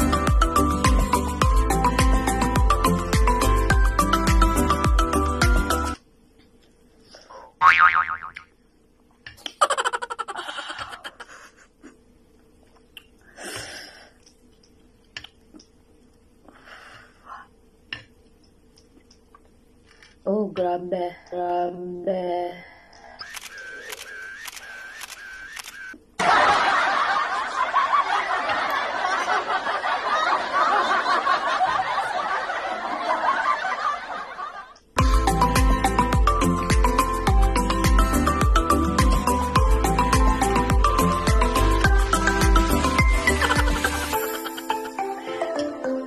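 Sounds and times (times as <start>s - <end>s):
cartoon boing: 7.6s - 8.5s.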